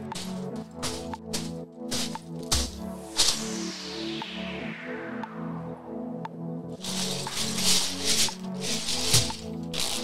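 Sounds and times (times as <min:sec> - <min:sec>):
background music: 0:00.0 - 0:10.0
lego bricks rattling in bag: 0:06.8 - 0:10.0
plastic bag crinkling: 0:06.8 - 0:10.0.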